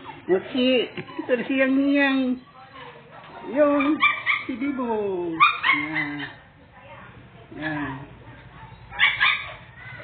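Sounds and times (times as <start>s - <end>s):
puppies yipping: 0.0s - 4.8s, 5.4s - 6.4s, 8.6s - 10.0s.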